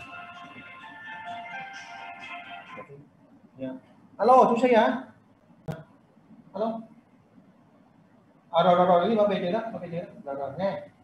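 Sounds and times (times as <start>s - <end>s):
phone ringtone melody: 0.0s - 2.9s.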